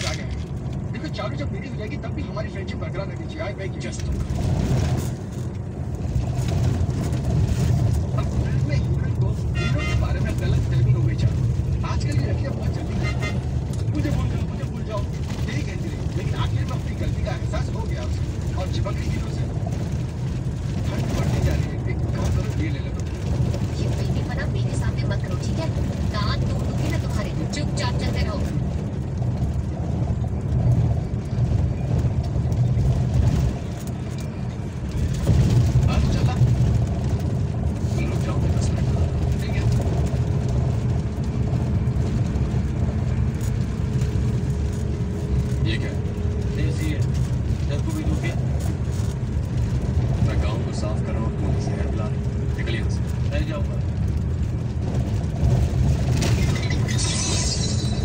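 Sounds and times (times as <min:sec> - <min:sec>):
vehicle driving rumble: 0:00.0 - 0:58.0.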